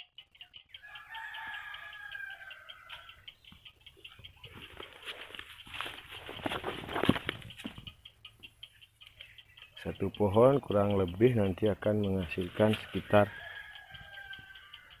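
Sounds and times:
clicks and rustles: 0:04.0 - 0:09.3.

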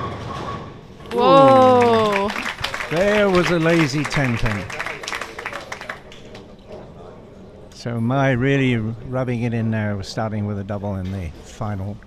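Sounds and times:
small audience clapping: 0:01.1 - 0:06.6.

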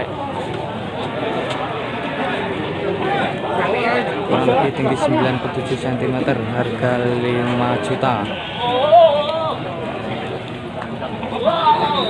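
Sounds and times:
market background chatter: 0:00.0 - 0:12.0
goat bleating: 0:08.2 - 0:09.2.

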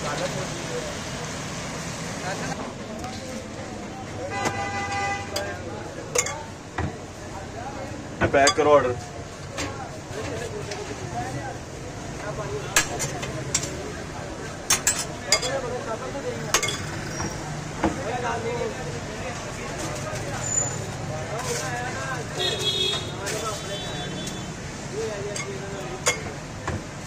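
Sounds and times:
metal spoon clinking glass bowls: 0:06.1 - 0:06.5, 0:14.7 - 0:15.6, 0:16.5 - 0:17.0, 0:25.3 - 0:26.3.

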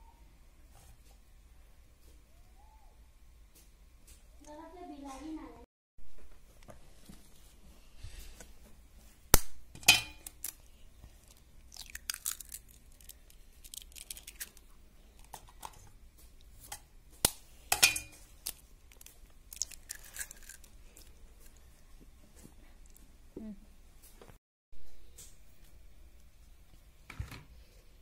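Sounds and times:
eggshell crackling: 0:10.1 - 0:15.5, 0:18.2 - 0:21.9.

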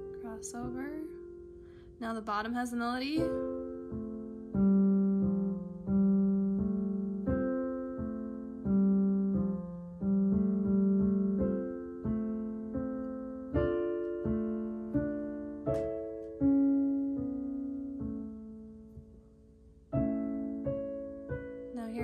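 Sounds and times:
slow piano piece: 0:00.0 - 0:22.0.

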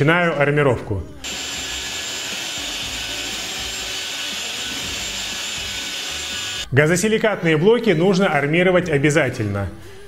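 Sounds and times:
electric mixer churning adhesive: 0:01.2 - 0:06.7.

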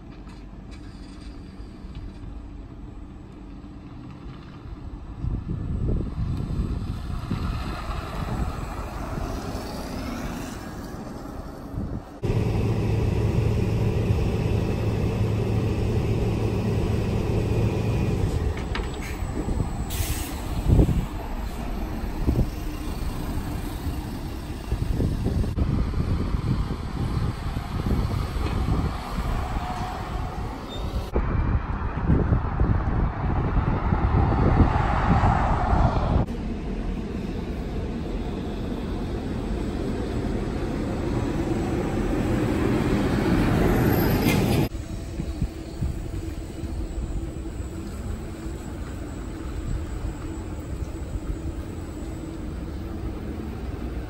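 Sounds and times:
buses humming: 0:00.0 - 0:31.2, 0:35.6 - 0:54.0
road traffic: 0:00.0 - 0:54.0
air brake hiss: 0:19.8 - 0:21.7.

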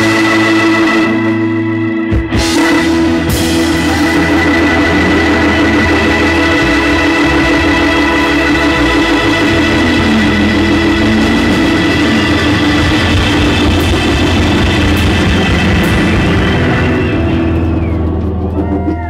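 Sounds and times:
rock band holding a chord: 0:00.0 - 0:19.0.

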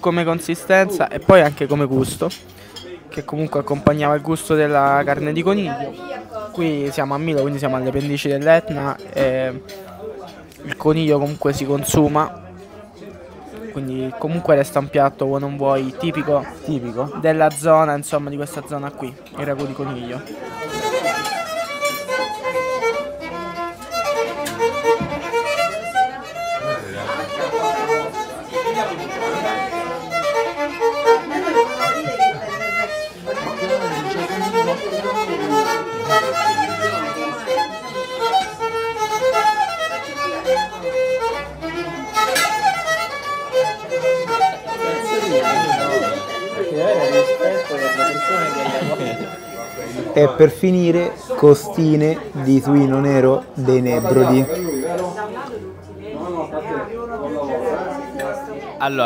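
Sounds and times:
diners' voices: 0:00.0 - 0:59.0
solo violin bowed notes: 0:20.4 - 0:50.2.

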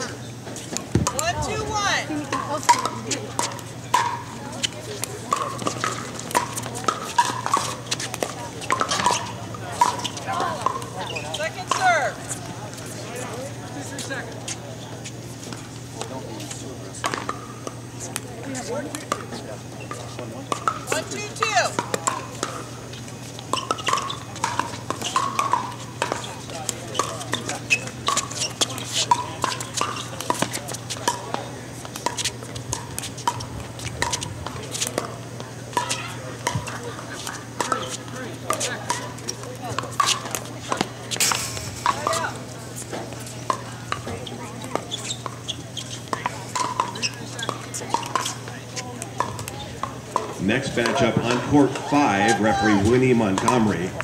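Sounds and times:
background chatter: 0:00.0 - 0:54.0
paddles striking pickleballs: 0:00.0 - 0:54.0
steady low hum: 0:00.0 - 0:54.0.

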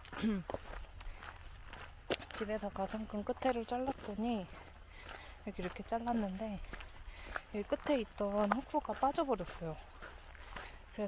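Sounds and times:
footsteps on dirt track: 0:00.0 - 0:11.0
woman murmuring: 0:00.2 - 0:00.6.

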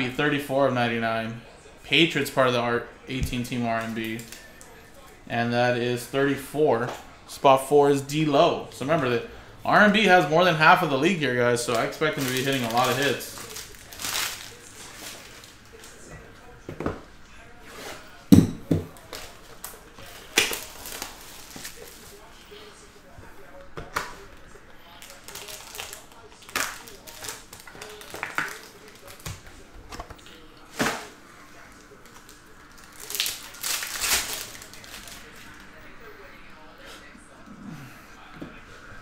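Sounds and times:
foil packs rustling: 0:11.0 - 0:16.0, 0:18.9 - 0:22.6, 0:24.9 - 0:35.6.

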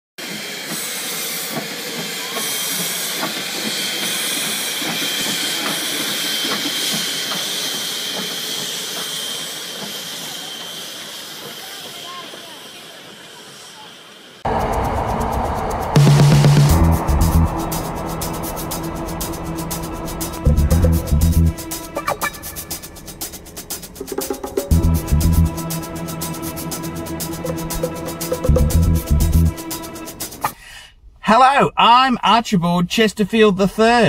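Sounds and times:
steam locomotive hissing: 0:00.2 - 0:30.8
loud electronic music: 0:15.9 - 0:30.4.

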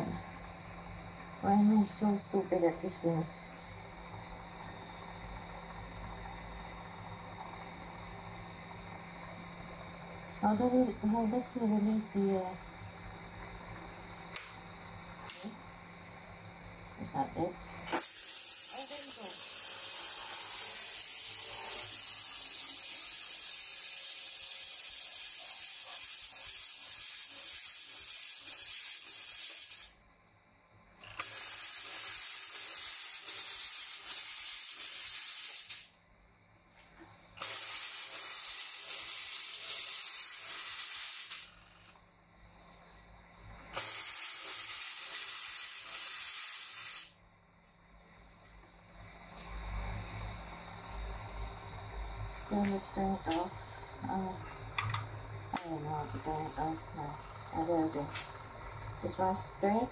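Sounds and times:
mist fogger hissing: 0:17.8 - 0:30.0, 0:31.2 - 0:36.0, 0:37.4 - 0:41.6, 0:43.7 - 0:47.2.

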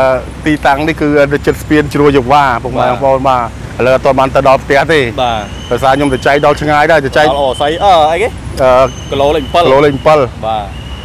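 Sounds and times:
man talking: 0:00.0 - 0:10.8
low traffic hum: 0:00.0 - 0:11.0.

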